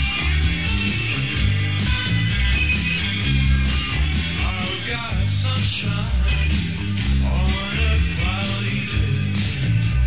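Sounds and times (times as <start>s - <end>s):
electric guitar: 0.0s - 10.0s
rock band playing live: 0.0s - 10.0s.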